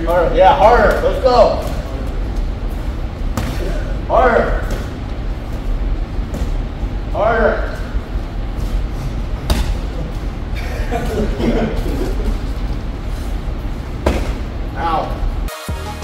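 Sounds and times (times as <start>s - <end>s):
boxing gloves slaps and thuds: 14.0s - 14.4s.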